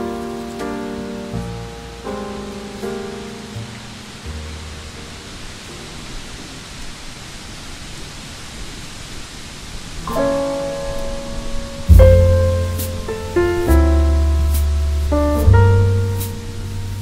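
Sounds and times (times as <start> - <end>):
piano chord: 0.0 - 6.7, 10.0 - 17.0
soft jazz: 0.0 - 7.0, 10.0 - 17.0
steady rain hiss: 0.0 - 17.0.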